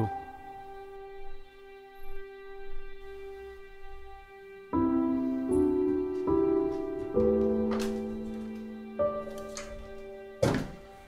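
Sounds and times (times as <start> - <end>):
slow sad piano: 0.0 - 11.0
dull thunk: 10.4 - 11.0.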